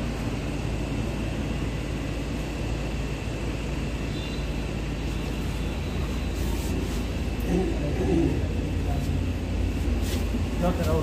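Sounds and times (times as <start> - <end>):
faint voices: 7.4 - 9.8.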